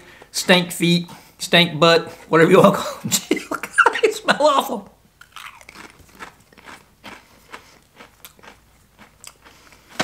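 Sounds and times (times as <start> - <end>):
person chewing potato chip: 5.2 - 10.0.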